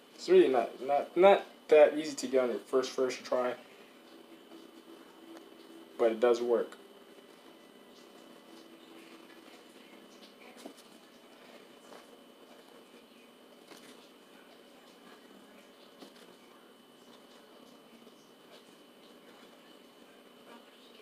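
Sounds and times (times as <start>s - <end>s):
faint steady whine: 0.0s - 21.0s.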